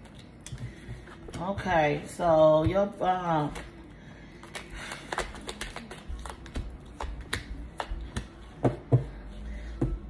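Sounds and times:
cards shuffling and flicking: 4.4s - 8.4s.

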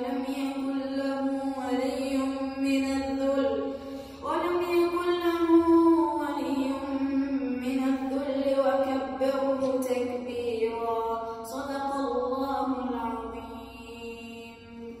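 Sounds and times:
boy chanting melodically: 0.0s - 15.0s.

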